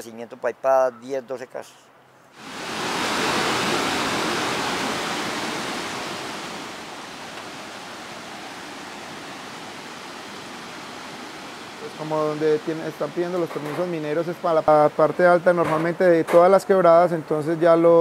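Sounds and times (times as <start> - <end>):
stream rushing over rocks: 2.4 - 15.5.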